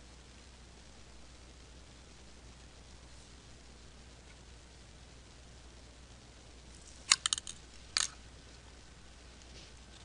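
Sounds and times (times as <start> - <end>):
metal instruments clicking: 7.1 - 8.2.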